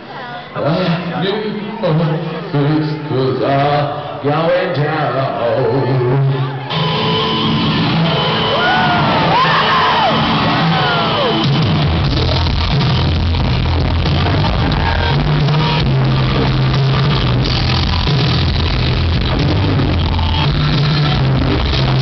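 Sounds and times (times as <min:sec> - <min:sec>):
rock band playing live: 0:06.6 - 0:22.0
heavy bass line: 0:06.7 - 0:22.0.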